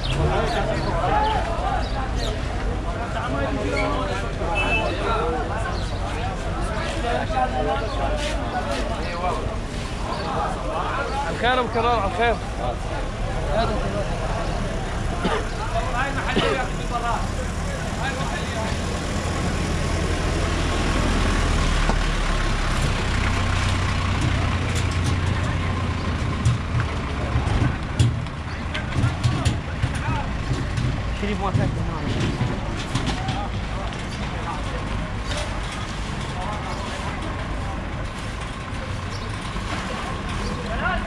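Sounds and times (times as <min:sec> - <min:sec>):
market voices: 0:00.0 - 0:41.0
truck engine humming: 0:00.0 - 0:41.0
scattered knocks: 0:24.2 - 0:33.6.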